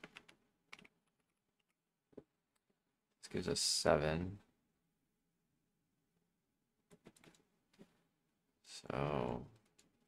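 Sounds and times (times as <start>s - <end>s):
typing on computer keyboard: 0.0s - 1.3s.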